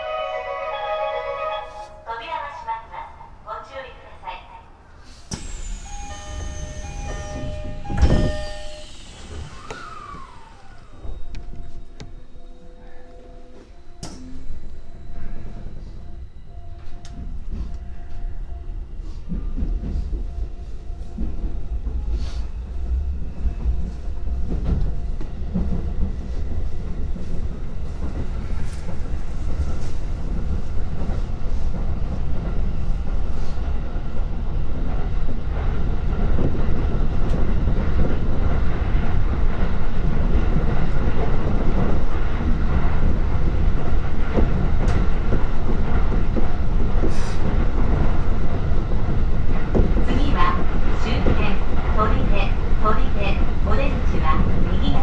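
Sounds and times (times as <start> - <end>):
train running rumble: 5.2 - 55.0
train wheels clacking: 5.3 - 12.2, 19.0 - 55.0.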